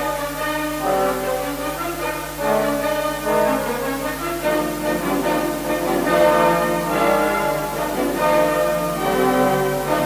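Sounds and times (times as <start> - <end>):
symphony orchestra playing: 0.0 - 10.0.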